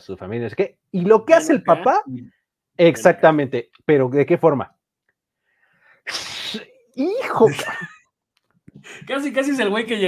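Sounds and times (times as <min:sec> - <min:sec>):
person hissing breath: 0:05.6 - 0:06.7, 0:08.8 - 0:09.1.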